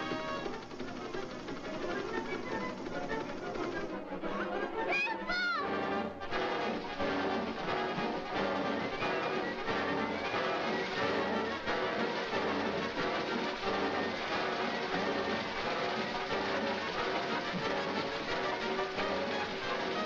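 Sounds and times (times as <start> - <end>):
orchestral cartoon music with brass: 0.0 - 20.0.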